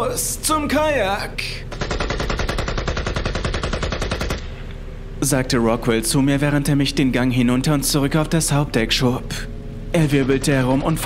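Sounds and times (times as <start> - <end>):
automatic rifle fire: 1.7 - 4.5.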